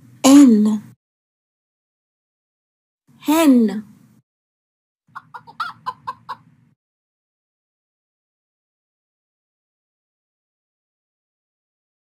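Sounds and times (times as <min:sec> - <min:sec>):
hen clucking: 0:05.1 - 0:06.6.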